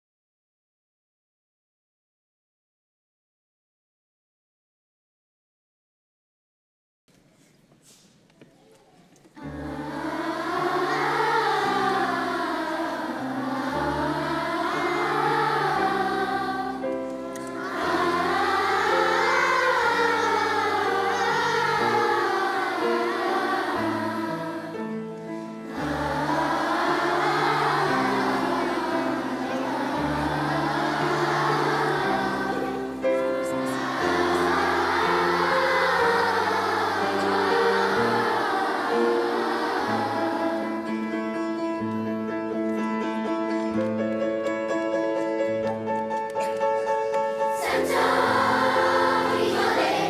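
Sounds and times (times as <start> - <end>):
children's choir singing: 8.6 - 50.0
piano chords: 9.4 - 50.0.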